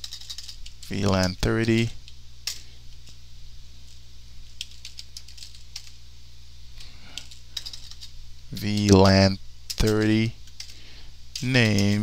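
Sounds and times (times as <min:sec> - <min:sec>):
keyboard typing: 0:00.0 - 0:02.0, 0:04.5 - 0:06.0, 0:07.1 - 0:12.0
low electrical hum: 0:00.0 - 0:12.0.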